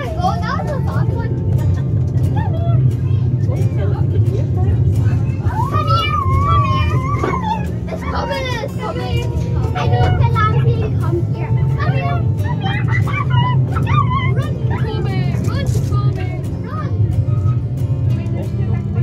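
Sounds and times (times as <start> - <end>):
miniature train rumbling: 0.0 - 19.0
children calling out: 5.3 - 15.8.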